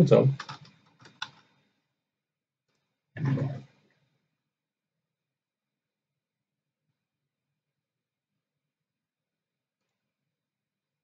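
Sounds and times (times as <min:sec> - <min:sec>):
computer keyboard keystrokes: 0:00.4 - 0:01.4.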